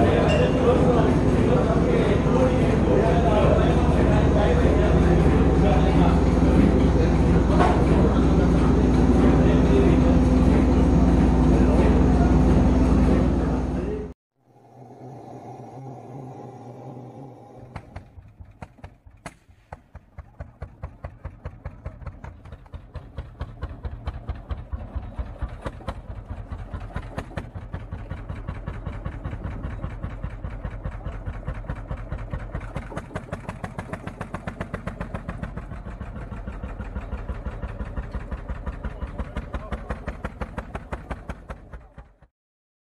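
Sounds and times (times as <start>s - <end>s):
loud steady noise with low hum: 0.0s - 18.2s
pulsing engine-like sound: 0.0s - 42.3s.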